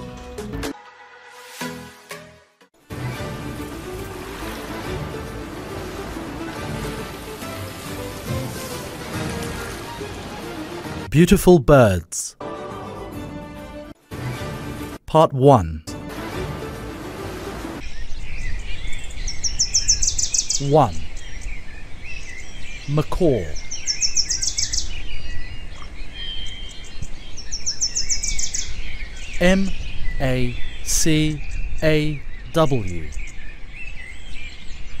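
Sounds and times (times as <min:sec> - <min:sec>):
birds chirping: 0:17.0 - 0:35.0.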